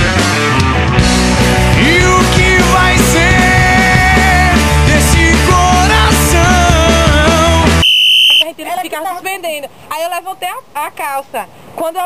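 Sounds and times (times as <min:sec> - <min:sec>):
high-pitched electronic beep: 0:07.8 - 0:08.5
people talking: 0:08.4 - 0:12.0.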